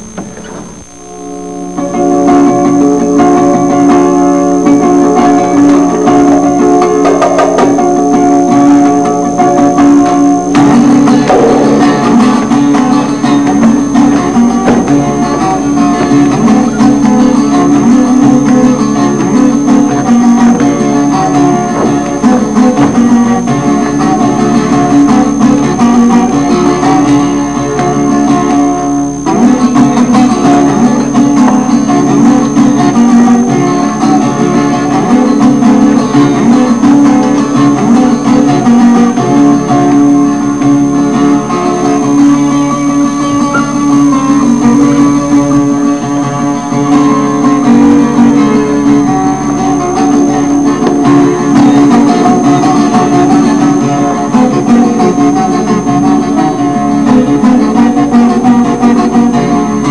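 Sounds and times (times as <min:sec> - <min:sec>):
acoustic guitar picking: 0:00.0 - 0:59.9.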